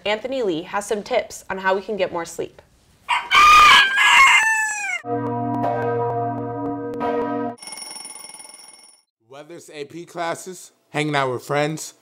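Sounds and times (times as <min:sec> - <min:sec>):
rooster crowing: 0:03.1 - 0:05.1
high ringing: 0:07.1 - 0:09.0
alarm clock bell ringing: 0:07.6 - 0:09.1.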